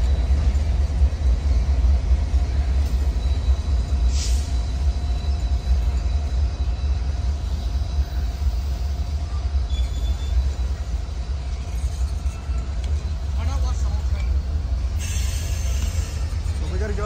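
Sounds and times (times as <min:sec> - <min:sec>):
freight train wheels rumbling on rails: 0:00.0 - 0:17.0.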